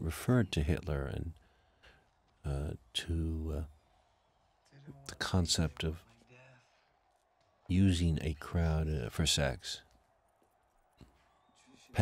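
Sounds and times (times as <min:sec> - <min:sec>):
man's voice: 0:04.8 - 0:06.5, 0:07.7 - 0:09.8.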